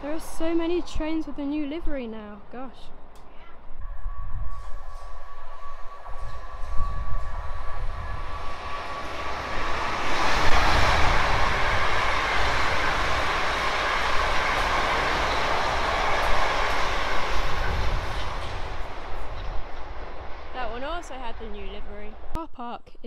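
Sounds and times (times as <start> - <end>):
train wheels on rails: 4.3 - 22.4.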